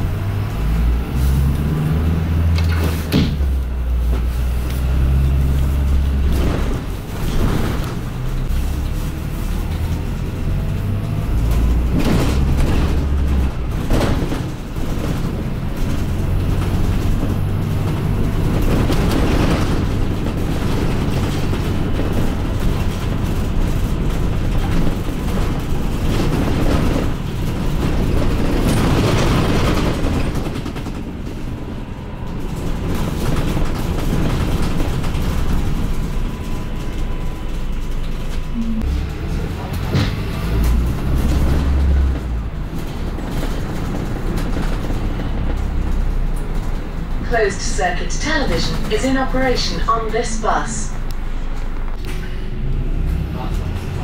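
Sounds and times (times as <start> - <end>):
bus engine drone: 0.0 - 54.0
road noise: 0.0 - 54.0.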